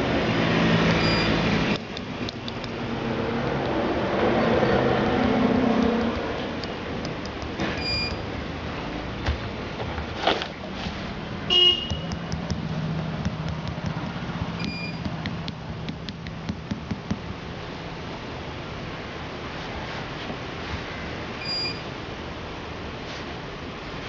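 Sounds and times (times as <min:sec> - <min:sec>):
street traffic: 0:00.0 - 0:24.0
vehicle horn toots: 0:11.5 - 0:12.2.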